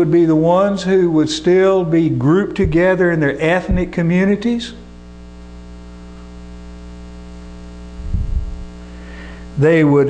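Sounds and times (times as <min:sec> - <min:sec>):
electrical mains hum: 0:00.0 - 0:10.0
low rumble: 0:08.0 - 0:08.8.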